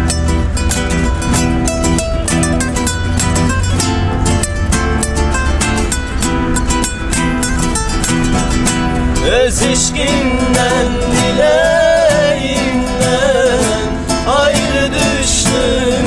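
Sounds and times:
acoustic guitars strumming: 0.0 - 16.0
man singing: 9.2 - 16.0.

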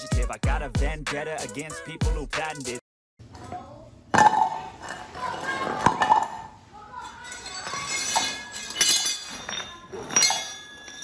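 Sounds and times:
metal parts clanking on tiled floor: 5.8 - 11.0.

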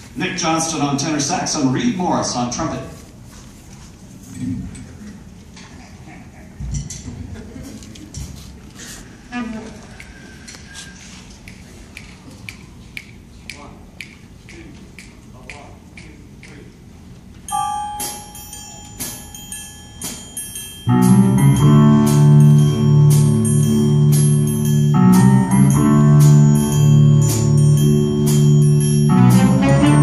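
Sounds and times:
bell-like strikes: 17.5 - 30.0
jazz band playing: 20.0 - 30.0.

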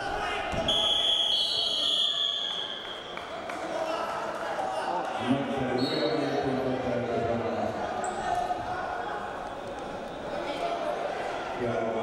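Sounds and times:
din of a large hall: 0.0 - 12.0
referee's whistle: 0.6 - 2.9.

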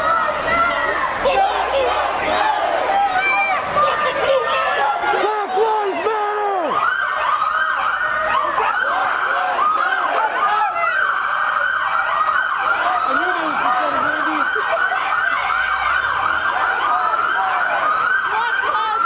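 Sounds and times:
police sirens yelping: 0.0 - 19.0.

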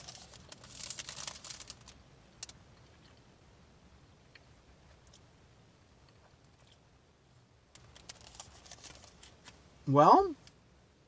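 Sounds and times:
cardboard box crinkling: 0.0 - 2.0, 7.8 - 9.5
plastic wrapper crackling: 0.0 - 2.6, 7.8 - 9.6.

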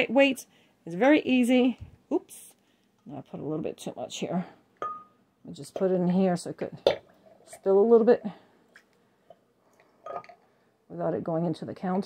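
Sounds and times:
glass tap: 4.8 - 5.1
glass pressed into jar: 4.8 - 5.2.

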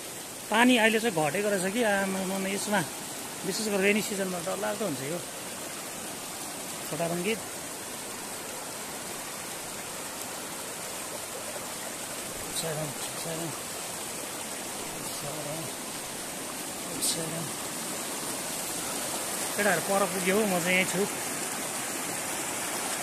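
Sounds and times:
stream rushing over rocks: 0.0 - 23.0.

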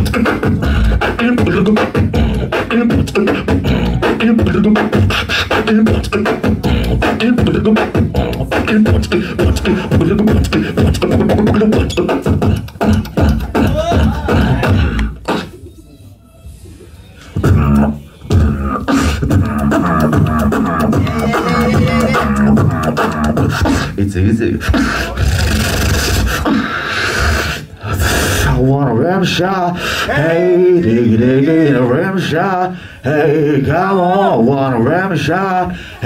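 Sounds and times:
beatboxing through pa: 0.0 - 15.8, 17.2 - 36.0.

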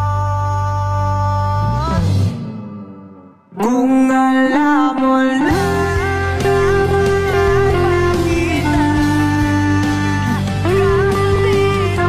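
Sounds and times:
electric guitar lead melody: 2.7 - 12.0.

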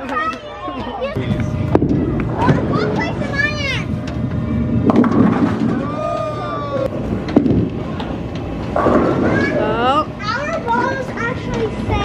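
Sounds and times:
bowling balls rolling: 1.2 - 12.0.

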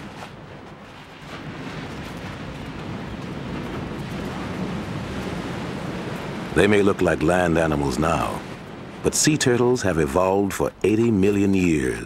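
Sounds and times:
waves washing on a beach: 0.0 - 12.0.

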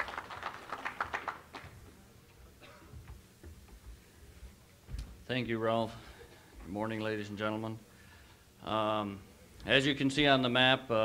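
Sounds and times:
audience applause: 0.0 - 1.9.

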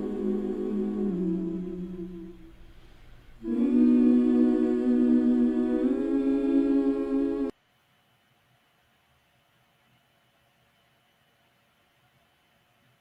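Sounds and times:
wordless hummed vocal notes: 0.0 - 7.5.

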